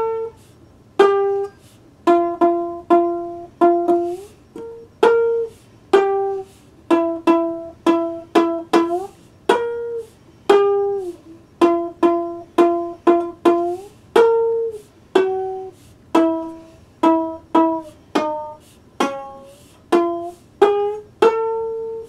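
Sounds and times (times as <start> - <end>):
slide string plucked notes: 0.0 - 22.0.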